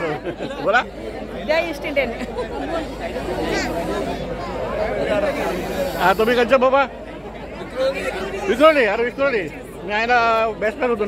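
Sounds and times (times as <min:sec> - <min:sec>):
babble of overlapping conversation: 0:00.0 - 0:11.0.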